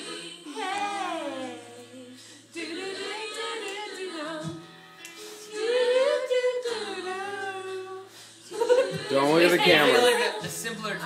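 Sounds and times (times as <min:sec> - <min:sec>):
women singing a cappella: 0:00.0 - 0:10.8.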